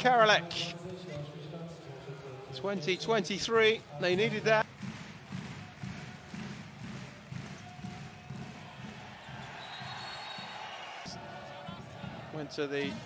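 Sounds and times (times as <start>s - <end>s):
arena crowd noise: 0.0s - 13.0s
ball bouncing on court floor: 4.6s - 10.5s
long steady whistle: 9.6s - 10.8s.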